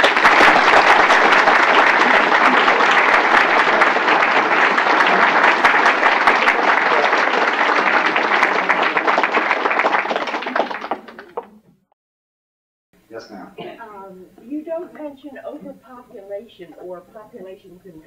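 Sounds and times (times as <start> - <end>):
audience applauding: 0.0 - 11.6.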